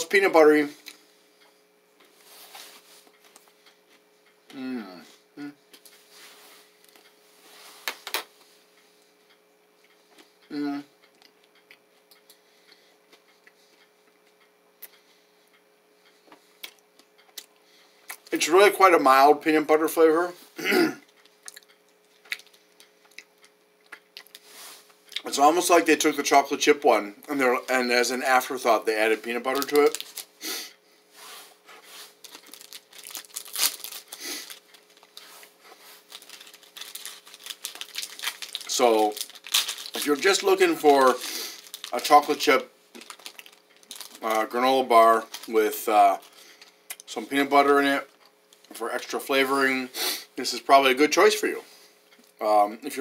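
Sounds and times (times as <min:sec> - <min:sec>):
faint steady hum: 0:00.0 - 0:53.0
mouth chewing granola bar: 0:21.0 - 0:25.3, 0:29.2 - 0:30.4, 0:32.0 - 0:44.6
wrapper crinkling: 0:29.2 - 0:30.4, 0:32.1 - 0:46.7.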